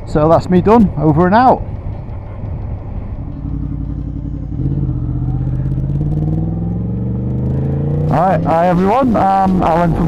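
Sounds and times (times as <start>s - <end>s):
motorcycle engine idling: 1.8s - 6.4s.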